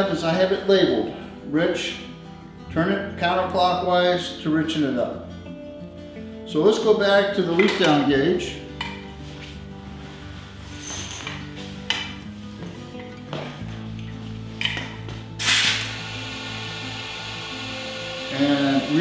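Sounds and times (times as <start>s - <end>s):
background music: 0.0s - 19.0s
compressed air hiss: 15.4s - 19.0s.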